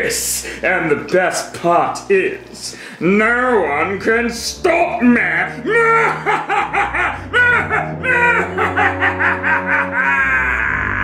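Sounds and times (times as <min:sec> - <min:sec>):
man's evil laugh: 0:05.7 - 0:11.0.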